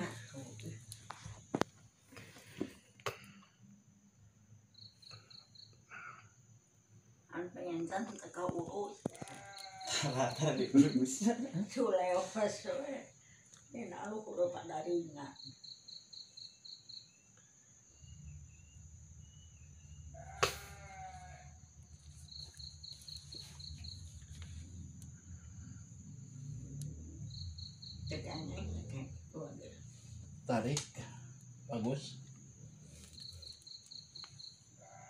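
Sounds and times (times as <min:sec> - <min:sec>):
insect chirping: 0:00.0 - 0:35.0.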